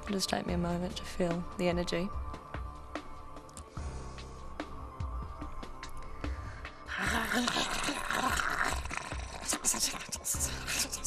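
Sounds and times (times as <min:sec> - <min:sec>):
woman growling vocally: 0:06.9 - 0:11.0
woman hissing: 0:06.9 - 0:11.0.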